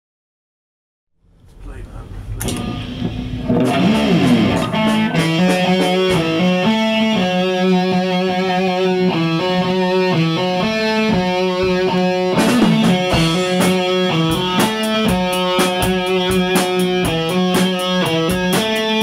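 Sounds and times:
distorted electric guitar: 1.6s - 19.0s.

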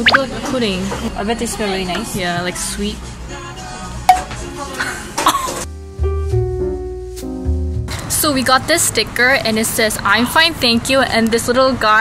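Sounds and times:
keyboard and bass music: 5.7s - 8.0s.

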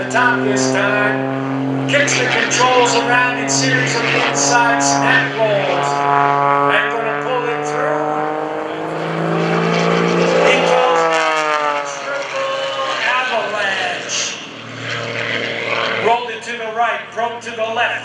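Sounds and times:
propeller plane engine in flight: 0.0s - 18.0s.

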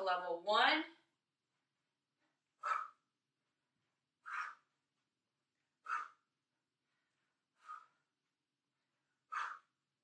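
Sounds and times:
woman breathing forcefully: 2.1s - 5.0s, 5.6s - 10.0s.

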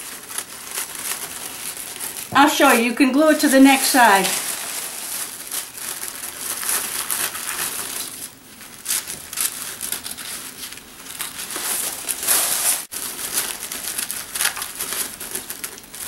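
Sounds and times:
tissue paper crinkling: 0.0s - 16.0s.

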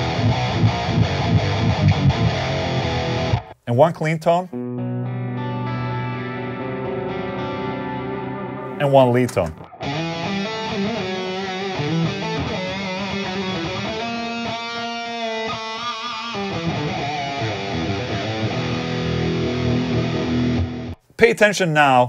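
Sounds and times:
electric guitar lead line with delay: 0.0s - 3.6s, 4.5s - 8.8s, 9.4s - 21.0s.

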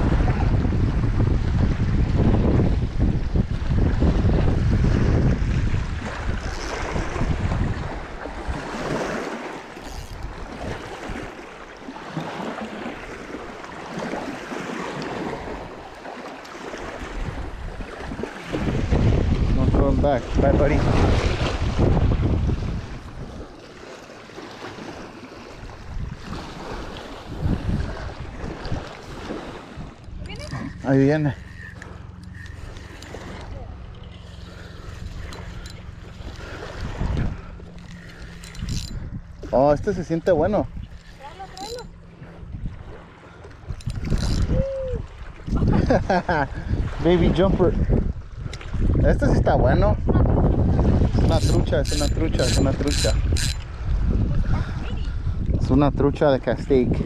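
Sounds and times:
wind buffeting microphone: 0.0s - 23.9s, 24.5s - 57.0s
small waves lapping: 1.3s - 57.0s.

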